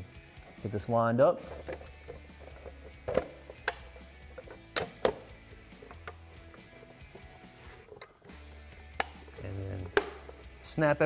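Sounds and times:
soft background music: 0.0 - 11.0
hard plastic knocks and clicks: 1.6 - 6.2, 9.0 - 10.4.

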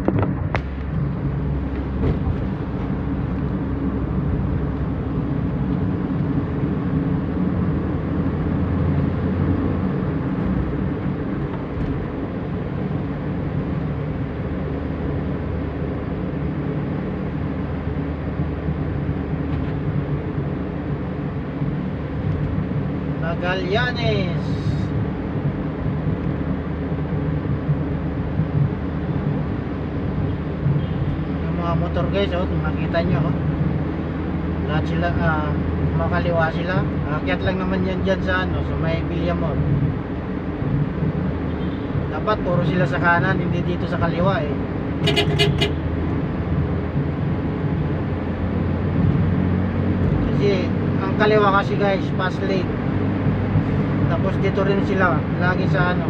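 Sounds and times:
car engine and tyre noise: 0.0 - 56.0.

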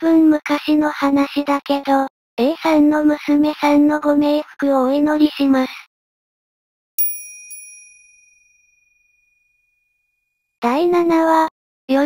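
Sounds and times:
small bell chime: 7.0 - 10.4.

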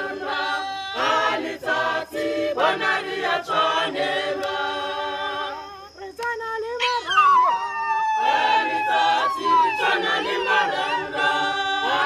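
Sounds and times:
choir singing a cappella: 0.0 - 6.1, 8.1 - 12.0.

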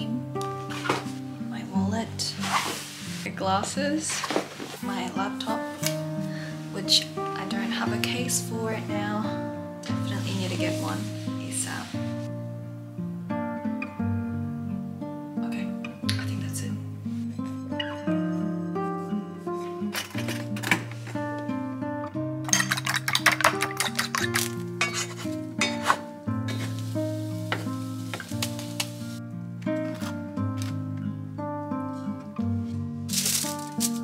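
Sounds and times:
background music: 0.0 - 34.0
kitchen clinks and clatter: 22.5 - 25.9.

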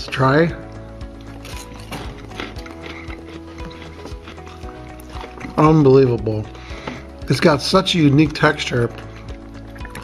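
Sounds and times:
background music with held notes: 0.0 - 10.0
crunching and chewing: 1.0 - 7.1.

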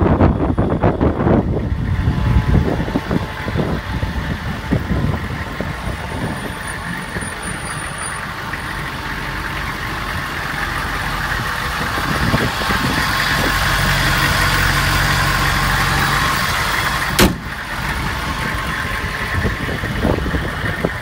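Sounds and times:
van engine idling: 0.0 - 21.0
hood slamming shut: 17.1 - 17.6.

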